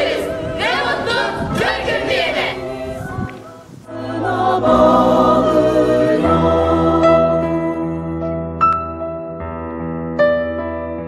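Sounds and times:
group singing slow song: 0.0s - 8.3s
instrumental music: 0.0s - 11.0s.

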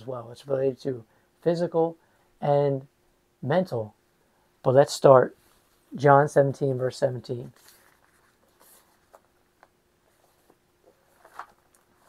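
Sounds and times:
thin pages rustling: 7.5s - 12.0s.

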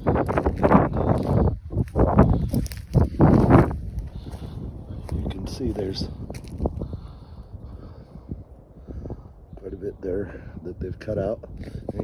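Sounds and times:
footsteps crunching on branches: 0.0s - 7.0s
low microphone rumble: 0.0s - 12.0s.

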